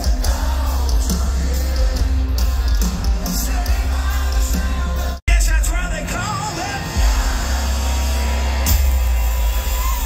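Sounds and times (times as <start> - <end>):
person singing: 0.0 - 5.2
live band music: 0.0 - 10.0.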